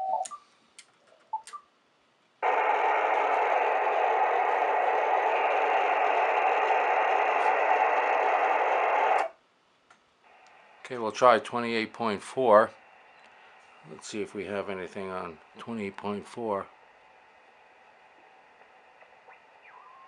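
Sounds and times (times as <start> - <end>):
radio static: 2.4 - 9.3, 10.3 - 20.0.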